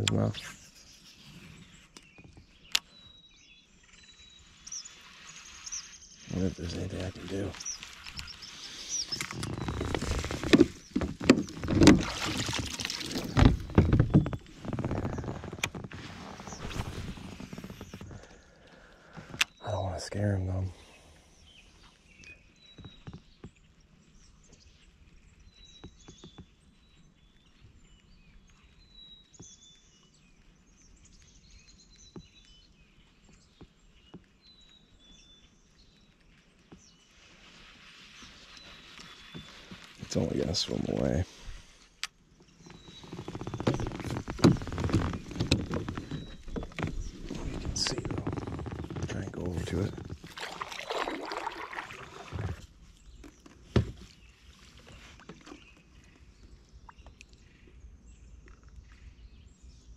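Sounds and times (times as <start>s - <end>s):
faint birds chirping: 0.0s - 59.9s
gear knocking in plastic kayak: 9.1s - 18.3s, 42.6s - 54.1s.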